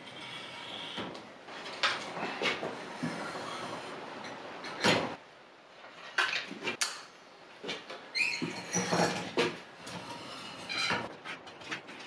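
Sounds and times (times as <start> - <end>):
metal squeal: 8.1 - 9.2
wire scraping through draw plate: 8.3 - 12.0.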